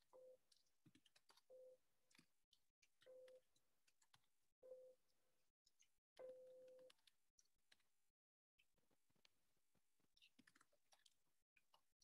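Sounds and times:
faint keyboard typing: 5.7s - 7.9s, 10.2s - 11.9s.

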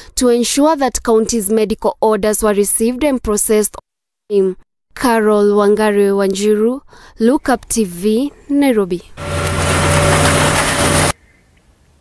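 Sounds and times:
machinery hum: 9.1s - 11.2s
loud hiss: 9.2s - 11.2s.

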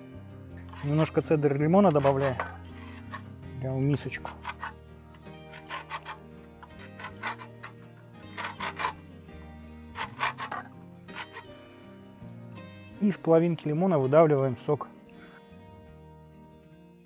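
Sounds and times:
background music: 0.0s - 17.0s
lemon rind scraping on a grater: 1.9s - 3.3s, 4.2s - 4.8s, 5.5s - 9.0s, 10.0s - 11.6s.

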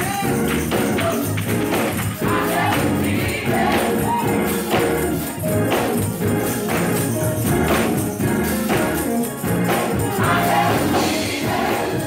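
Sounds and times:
choir singing gospel: 0.0s - 12.0s
drums and cymbals beat: 0.0s - 12.0s.

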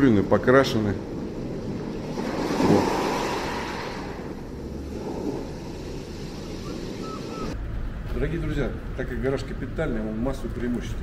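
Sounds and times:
sea surf washing on shore: 1.0s - 7.6s.

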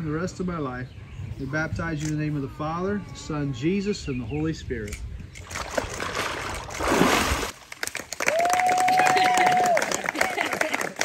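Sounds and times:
water splashing: 5.4s - 8.2s
crowd clapping: 7.6s - 11.0s
high cheer: 8.2s - 11.0s.

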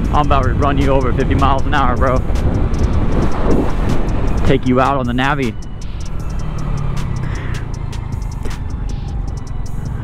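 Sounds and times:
wind rushing over microphone: 0.0s - 10.0s
scooter engine running: 5.9s - 10.0s.

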